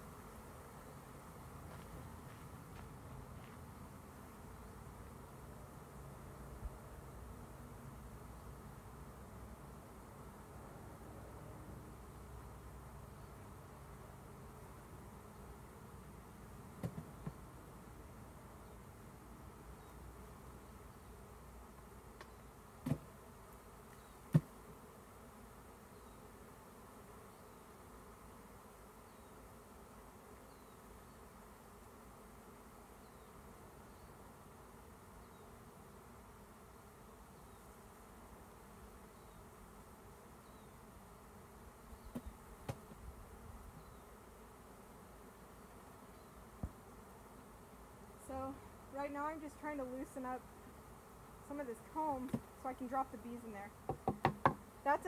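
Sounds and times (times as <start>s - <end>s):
bee swarm humming: 0.0s - 55.0s.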